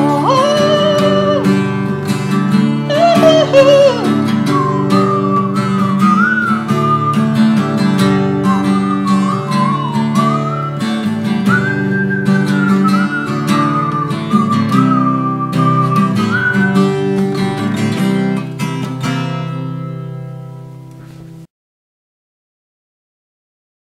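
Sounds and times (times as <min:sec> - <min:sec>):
high wavering melody line: 0:00.0 - 0:01.9, 0:02.8 - 0:11.1
acoustic guitar strumming: 0:00.0 - 0:21.5.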